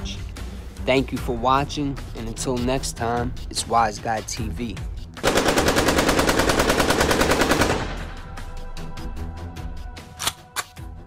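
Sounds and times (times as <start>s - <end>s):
automatic gunfire: 5.2s - 8.1s.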